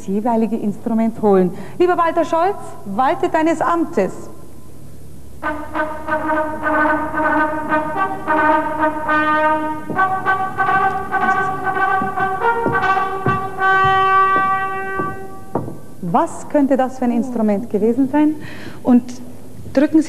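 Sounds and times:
brass instrument slow melody: 5.4 - 15.6.

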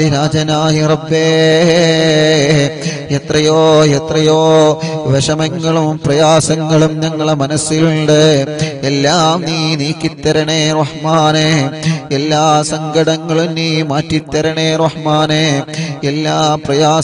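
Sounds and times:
man chanting: 0.0 - 17.0.

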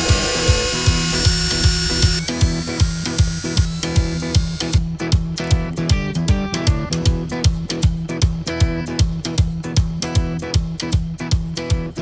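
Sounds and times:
cordless drill whining: 0.0 - 4.8
background music with beat: 0.0 - 12.0.

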